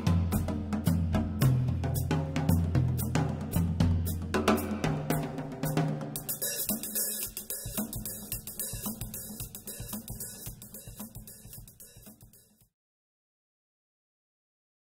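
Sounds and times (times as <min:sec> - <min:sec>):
drum kit playing: 0:00.0 - 0:12.7.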